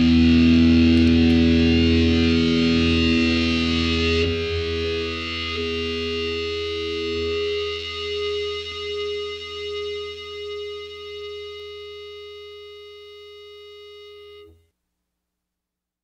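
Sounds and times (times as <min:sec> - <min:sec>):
electric guitar chord ringing: 0:00.0 - 0:14.6.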